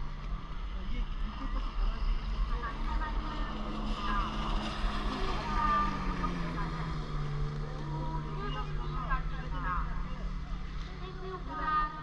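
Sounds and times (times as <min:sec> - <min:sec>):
motorboat engine humming: 0:00.0 - 0:12.0.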